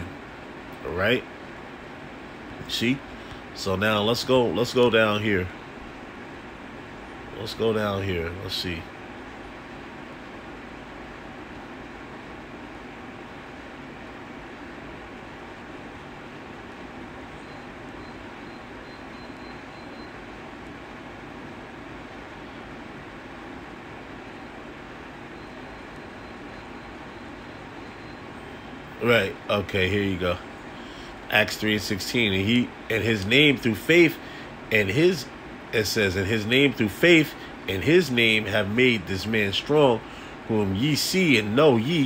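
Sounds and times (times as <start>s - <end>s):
steady hum and hiss: 0.0s - 42.0s.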